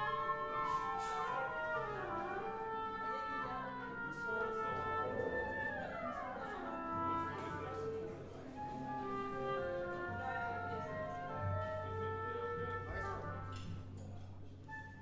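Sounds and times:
orchestra playing classical music: 0.0s - 15.0s.

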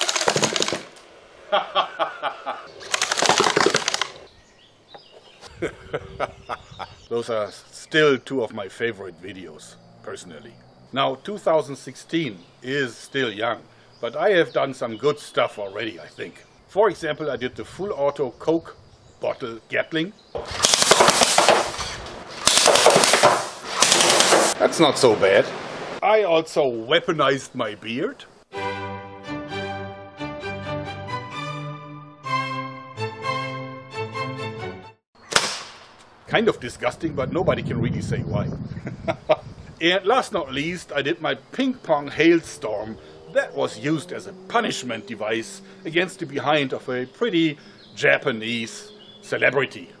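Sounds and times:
slingshot gun clattering shots: 0.0s - 1.1s, 2.8s - 4.3s, 20.4s - 24.6s, 35.3s - 36.0s.

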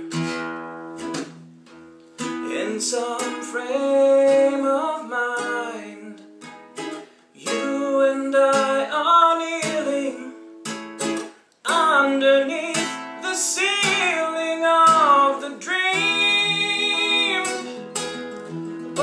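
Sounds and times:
acoustic guitar: 0.0s - 19.0s
man singing: 2.4s - 6.3s, 7.4s - 10.5s, 11.6s - 18.0s.

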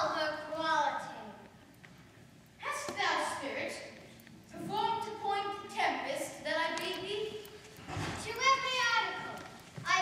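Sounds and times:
person speaking lines in a hall: 0.0s - 10.0s.

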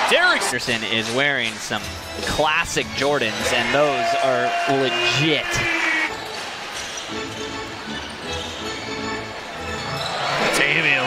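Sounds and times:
arena music: 0.0s - 11.0s.

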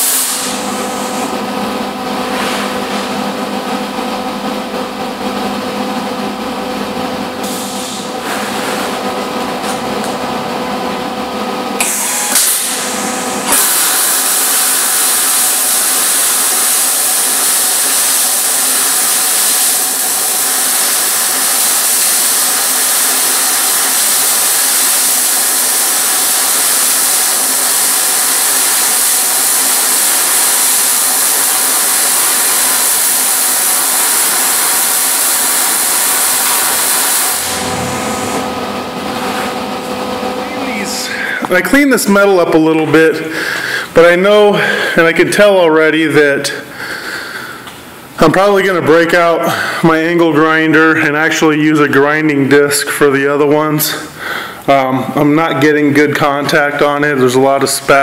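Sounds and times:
welding arc crackling and sizzling: 11.8s - 42.2s.

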